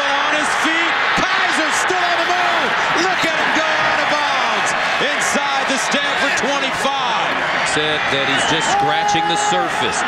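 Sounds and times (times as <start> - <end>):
man commentating: 0.0 - 10.0
stadium crowd noise: 0.0 - 10.0.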